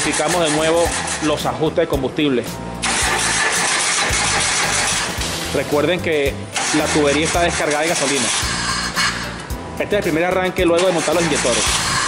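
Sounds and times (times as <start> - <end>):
car starter cranking engine: 2.8 - 5.4, 6.5 - 9.2.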